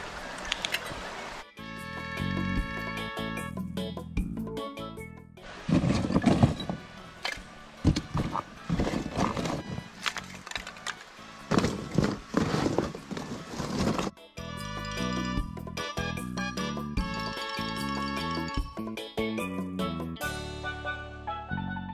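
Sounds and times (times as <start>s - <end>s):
background music: 1.4s - 21.9s
cardboard box rummaged: 5.5s - 6.8s, 7.9s - 10.5s, 11.5s - 14.2s
charcoal lumps clattering: 5.5s - 14.2s.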